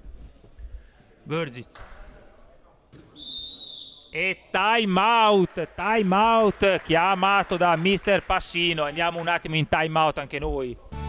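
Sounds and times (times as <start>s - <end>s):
long whistle blast: 3.2s - 4.1s.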